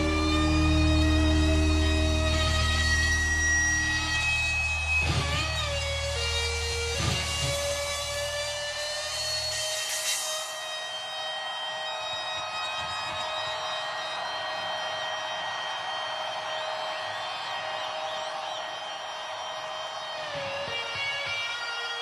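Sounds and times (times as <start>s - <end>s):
electric guitar sustained note: 0.0s - 10.9s.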